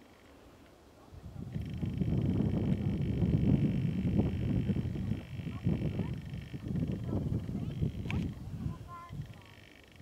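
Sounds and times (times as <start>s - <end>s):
wind buffeting microphone: 1.1s - 10.0s.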